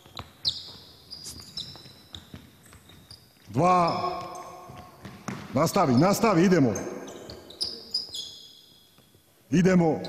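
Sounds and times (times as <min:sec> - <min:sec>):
shoes squeaking on hardwood: 0:00.0 - 0:09.3.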